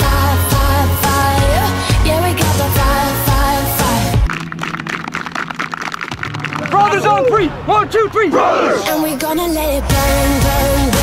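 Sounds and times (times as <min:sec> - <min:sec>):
music with bass: 0:00.0 - 0:05.4, 0:09.9 - 0:11.0.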